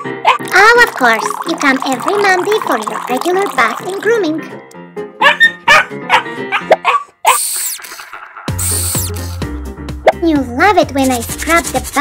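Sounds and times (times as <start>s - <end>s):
small dog barking: 0.0s - 0.4s, 5.2s - 7.4s
background music: 0.0s - 12.0s
bouncy music with bass: 8.2s - 11.5s
high hissing burst: 8.6s - 9.4s.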